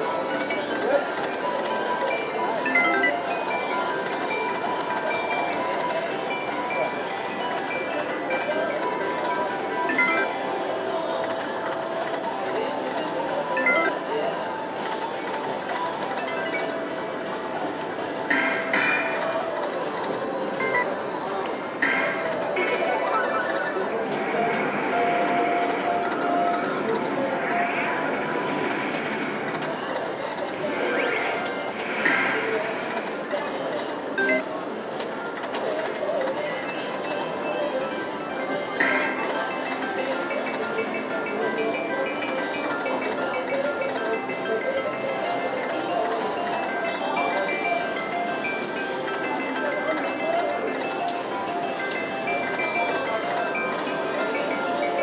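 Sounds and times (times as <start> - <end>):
slot machine electronic tones: 0.2 - 10.8, 12.4 - 28.0, 30.8 - 32.2, 34.1 - 34.5, 36.9 - 55.0
slot machine reels spinning: 21.8 - 27.6.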